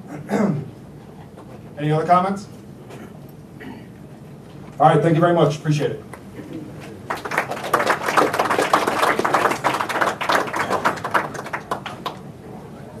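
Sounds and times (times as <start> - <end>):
audience applauding: 6.9 - 12.3.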